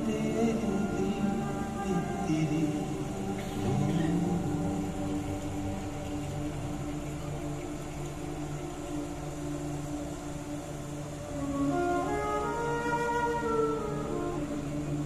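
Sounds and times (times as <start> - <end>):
ensemble sustained chord drone: 0.0 - 15.0.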